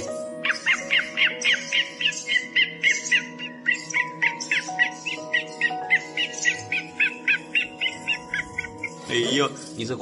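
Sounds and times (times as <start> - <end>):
high bird-like chirps: 0.0 - 9.8
background music with held notes: 0.0 - 10.0.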